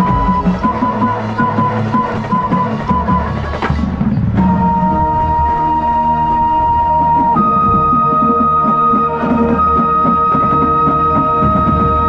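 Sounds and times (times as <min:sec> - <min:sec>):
flute holding long high note: 0:00.0 - 0:03.5, 0:04.4 - 0:12.0
marching band playing: 0:00.0 - 0:12.0.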